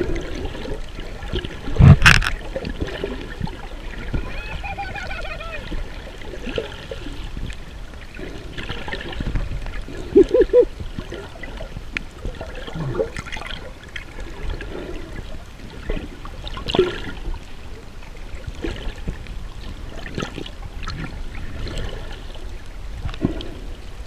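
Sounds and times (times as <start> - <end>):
muffled underwater water movement: 0.0 - 24.0
gurgling bubble blips: 8.7 - 13.7.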